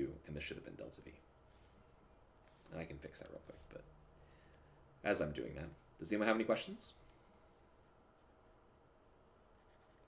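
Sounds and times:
stylus scratching and tapping a screen: 9.5s - 10.0s.

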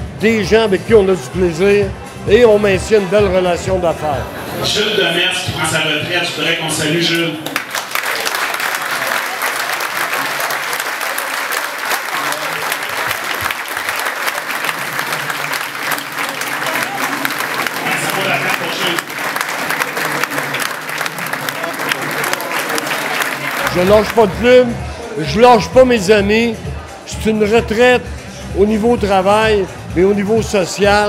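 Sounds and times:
people applauding: 7.0s - 24.7s.

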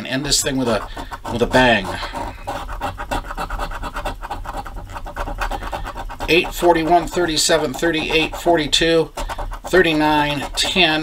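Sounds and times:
coin scraping lottery ticket: 0.0s - 11.0s.

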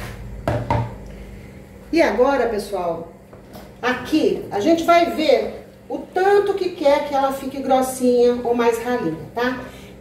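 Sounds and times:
low steady hum: 0.0s - 10.0s
kitchenware knocking: 0.4s - 1.0s.

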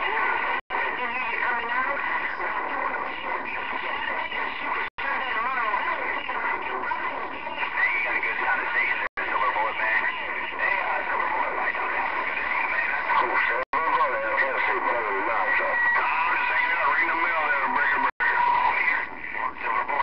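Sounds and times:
distorted radio voices: 0.0s - 20.0s
radio static: 0.0s - 20.0s.

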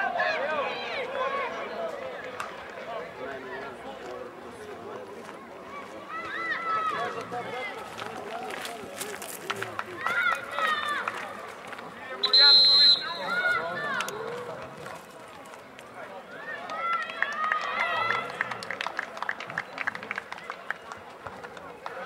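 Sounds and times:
referee's whistle blast: 12.2s - 13.6s.

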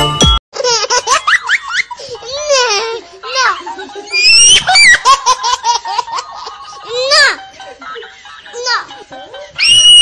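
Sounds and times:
toy baby giggles: 0.6s - 9.6s.

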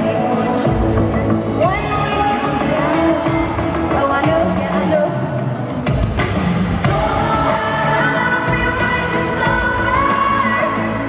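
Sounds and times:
backing band playing: 0.6s - 10.9s
person singing: 6.8s - 11.0s.

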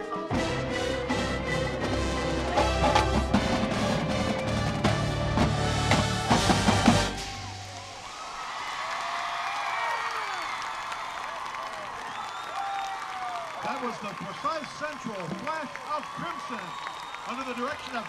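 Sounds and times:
marching band playing: 0.0s - 8.0s
crowd cheering: 0.0s - 18.0s
applause: 8.2s - 18.0s
whistling: 12.0s - 13.0s, 16.5s - 17.6s.

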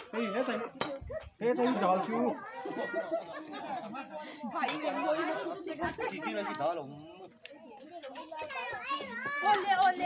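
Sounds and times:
chatter of voices: 0.0s - 10.0s
child's high voice: 2.3s - 3.2s, 8.2s - 9.8s.

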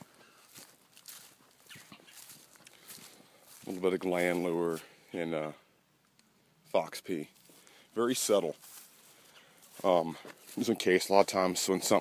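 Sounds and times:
footsteps on dry leaves: 0.0s - 4.8s, 7.3s - 12.0s.

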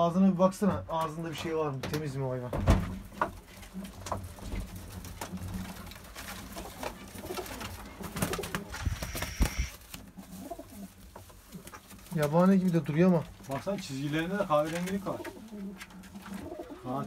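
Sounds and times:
knocks and scuffling: 0.8s - 17.0s
pigeons cooing: 6.4s - 11.0s, 14.7s - 17.0s.

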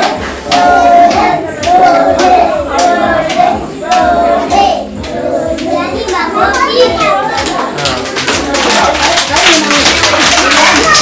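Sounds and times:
young children chanting together: 0.0s - 7.8s
hand clapping: 7.3s - 11.0s.

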